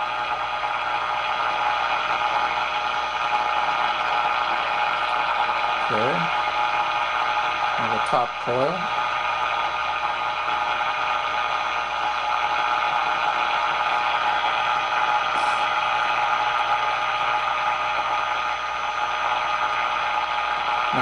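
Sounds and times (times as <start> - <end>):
radio static hiss: 0.1 - 21.0.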